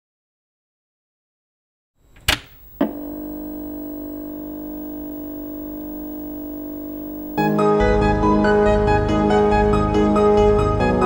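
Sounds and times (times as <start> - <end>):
held chord: 2.8 - 8.6.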